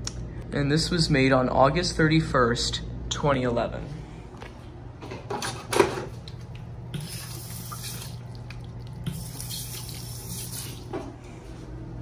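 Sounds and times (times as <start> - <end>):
low steady hum: 0.0 - 12.0
faucet running water into sink: 6.9 - 10.9.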